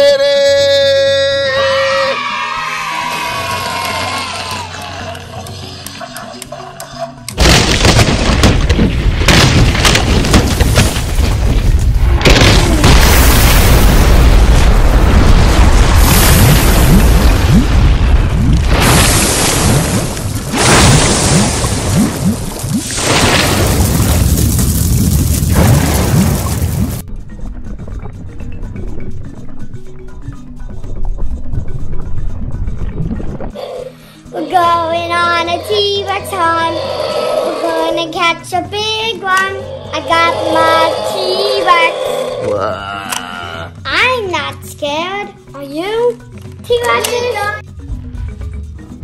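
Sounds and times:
background music: 0.0s - 18.8s, 27.0s - 49.0s
volcano eruption rumble and booms: 7.4s - 27.0s.

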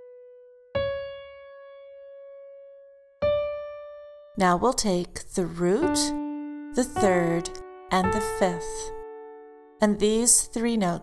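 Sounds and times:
piano notes: 0.0s - 11.0s.

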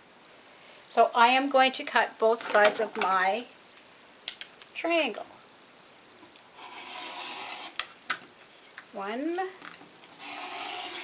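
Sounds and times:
rotary cutter rasping through fabric: 6.5s - 7.9s, 10.1s - 11.0s.

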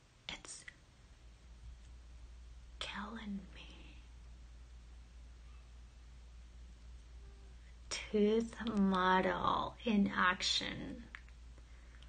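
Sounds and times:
faint low hum: 0.0s - 12.0s
woman whispering: 0.3s - 0.7s, 2.8s - 4.2s, 7.9s - 9.6s.

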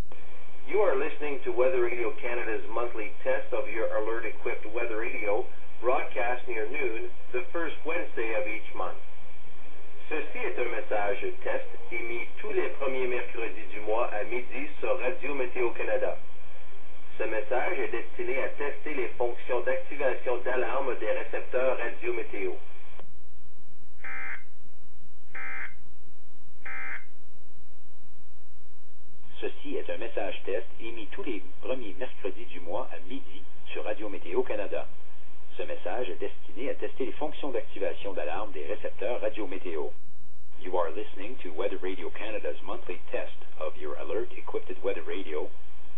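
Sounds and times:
announcer voice over radio speaker: 10.1s - 16.2s, 17.2s - 22.6s.

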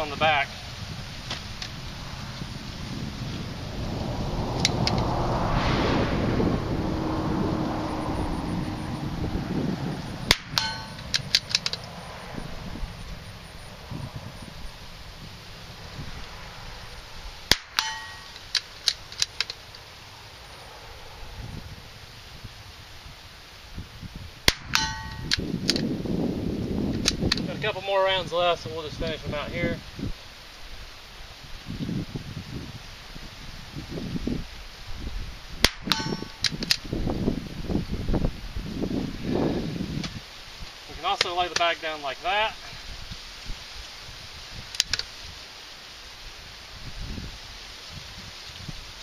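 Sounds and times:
metallic ringing clang: 10.3s - 11.2s, 17.5s - 18.5s, 24.5s - 25.4s, 35.9s - 36.5s.

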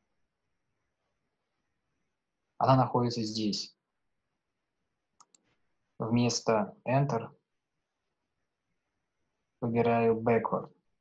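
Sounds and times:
computer mouse clicks: 5.2s - 5.6s.

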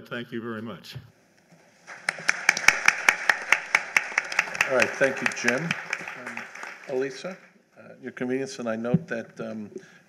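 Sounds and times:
audience applause: 1.8s - 7.4s.

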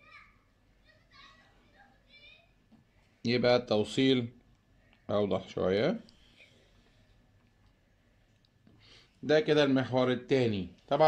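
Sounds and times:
faint children's voices: 0.0s - 2.8s.

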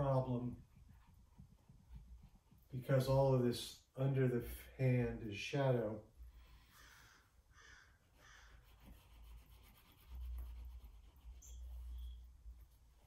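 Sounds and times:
paint stick rubbing on paper: 8.2s - 13.0s.

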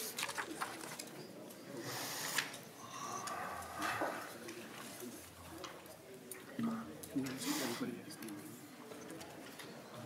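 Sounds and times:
paper rustling: 0.0s - 1.2s
murmur of low voices: 0.0s - 10.0s.

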